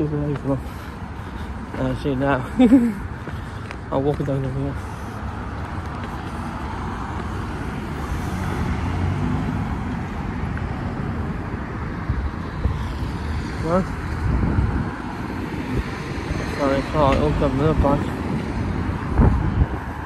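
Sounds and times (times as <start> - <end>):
road traffic rumble: 0.0 - 20.0
vehicle passing: 0.0 - 20.0.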